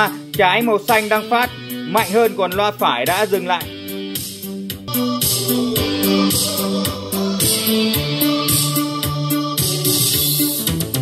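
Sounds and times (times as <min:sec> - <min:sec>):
music through speakers: 0:00.0 - 0:11.0.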